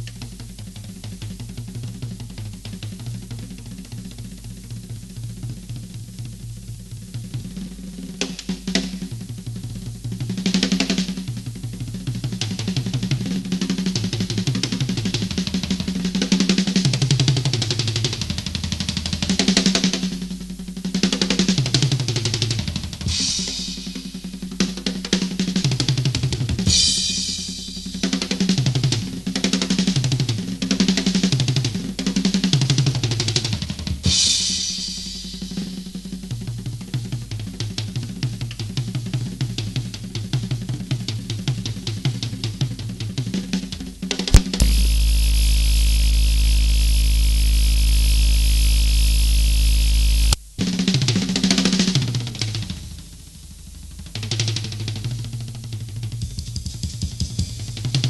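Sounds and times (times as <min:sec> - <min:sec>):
cymbal crashes: 0:23.0 - 0:24.5, 0:26.7 - 0:28.0, 0:34.0 - 0:36.0, 0:44.3 - 0:50.8
loud steady buzz: 0:44.3 - 0:50.8.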